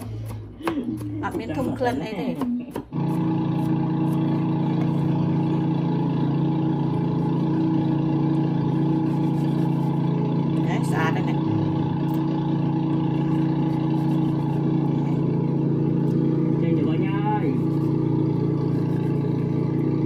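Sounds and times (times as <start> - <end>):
steady motor hum: 0.0 - 20.0.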